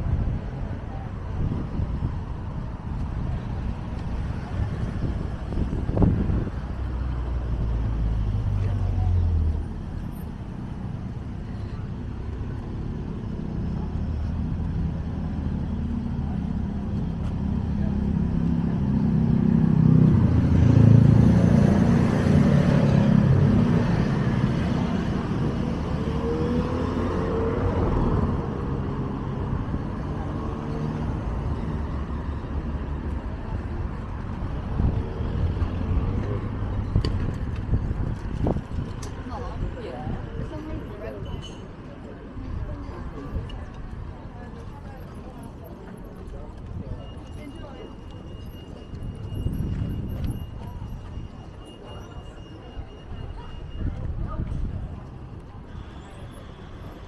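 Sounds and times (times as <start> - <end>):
cars passing: 0.0 - 57.0.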